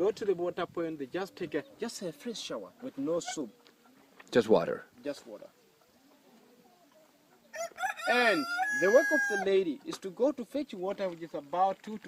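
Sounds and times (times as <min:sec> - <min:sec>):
rooster crowing: 0:07.5 - 0:09.5.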